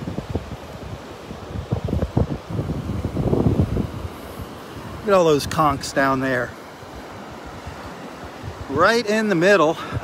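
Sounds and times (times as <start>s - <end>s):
wind buffeting microphone: 0.0s - 9.0s, 9.7s - 10.0s.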